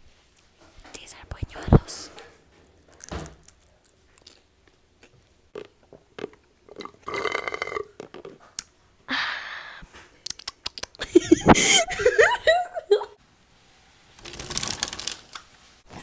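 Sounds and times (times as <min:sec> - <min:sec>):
chip crunching: 0:02.7 - 0:08.7, 0:14.2 - 0:15.4
child drinking: 0:05.5 - 0:08.6
child burping: 0:06.8 - 0:07.9.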